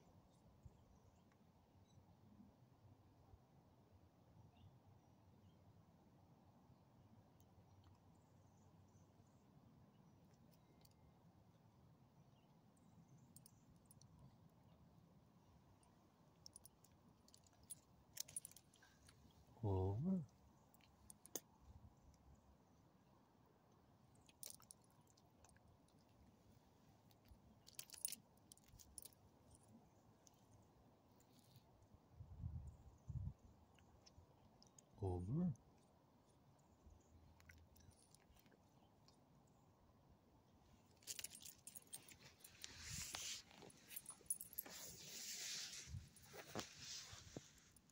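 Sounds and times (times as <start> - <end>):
dog collar tags jingling: 16.5 - 18.7, 27.6 - 29.6, 41.0 - 45.0
dog tags jingling: 41.0 - 42.3
scuffing and rustling: 42.1 - 47.8.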